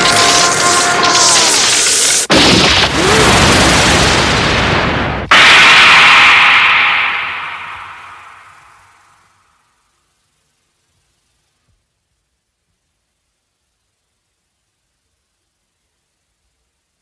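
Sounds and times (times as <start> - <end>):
loud rumbling blast: 0.0 - 9.4
loud rushing burst: 0.0 - 9.4.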